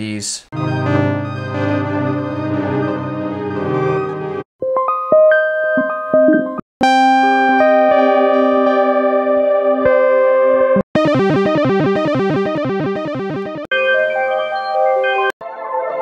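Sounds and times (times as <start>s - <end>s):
synthesizer held chord: 0.6s - 4.4s, 6.8s - 15.3s
stuttering synthesizer notes: 11.0s - 13.8s.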